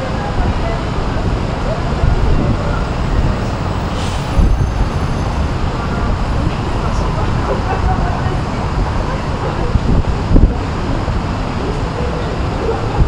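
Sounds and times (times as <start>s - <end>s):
city traffic noise: 0.0s - 13.0s
wind buffeting microphone: 0.0s - 13.0s
brief hiss: 3.9s - 4.5s.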